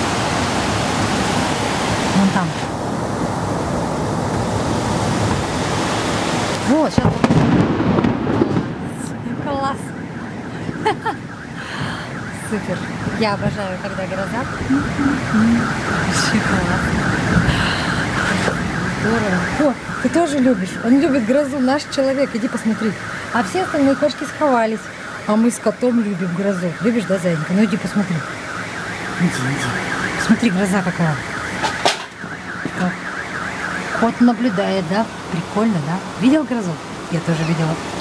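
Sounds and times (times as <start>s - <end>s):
heavy rain hiss: 0.0s - 9.7s, 11.5s - 31.2s
car alarm warbling: 6.7s - 37.7s.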